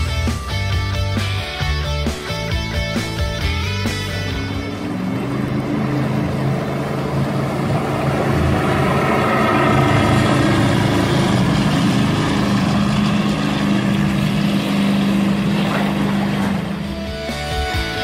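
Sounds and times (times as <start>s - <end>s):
powerboat engine at high speed: 0.0s - 18.0s
hull rushing through water spray: 4.2s - 17.0s.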